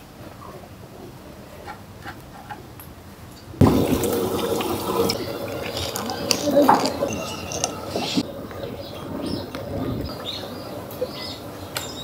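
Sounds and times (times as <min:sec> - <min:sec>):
water running and splashing: 0:03.6 - 0:08.4.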